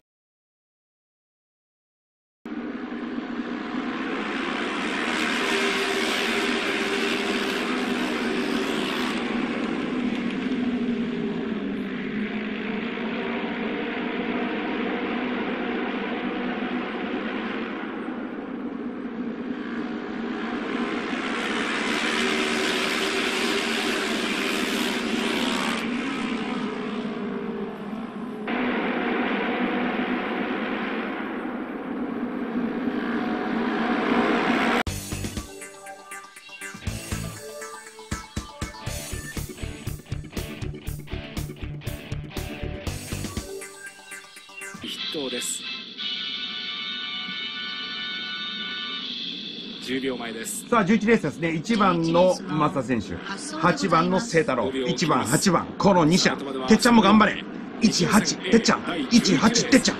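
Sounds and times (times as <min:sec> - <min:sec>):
racing motorcycle engines passing: 0:02.5 - 0:34.9.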